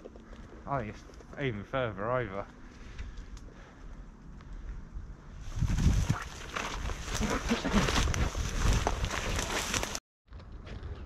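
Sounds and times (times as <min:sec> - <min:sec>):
wind rumbling on microphone: 0:02.9 - 0:11.0
brambles rustling and crackling: 0:05.5 - 0:10.0.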